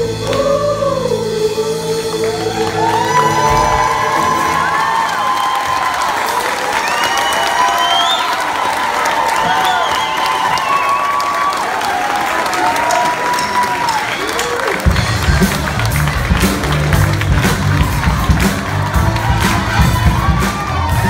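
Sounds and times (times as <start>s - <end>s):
choir singing: 0.0s - 5.2s
crowd cheering and applauding: 0.0s - 21.0s
rising whistle: 6.8s - 8.5s, 9.4s - 11.2s.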